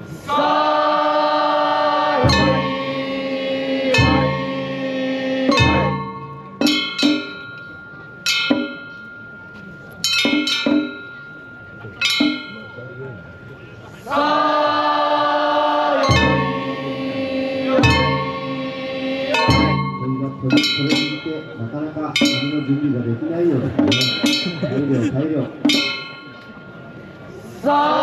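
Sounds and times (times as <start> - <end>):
held chord of stacked tones: 0.2 - 23.4, 24.0 - 28.0
sharp ringing struck notes: 0.3 - 27.4
deep drum beats: 2.2 - 2.8, 3.9 - 4.6, 5.5 - 7.5, 17.7 - 18.5, 19.4 - 24.9.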